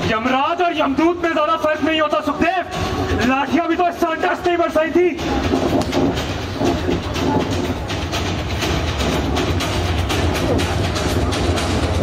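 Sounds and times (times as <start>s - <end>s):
train rumble: 5.1s - 12.0s.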